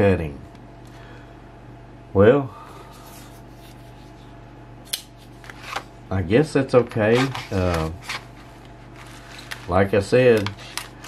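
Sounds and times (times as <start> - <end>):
low steady hum: 0.0 - 11.0
plastic packaging rustling: 7.1 - 11.0.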